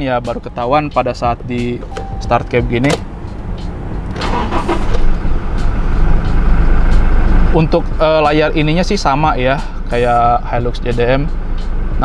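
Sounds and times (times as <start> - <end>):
engine cranking and idling: 1.1 - 8.8.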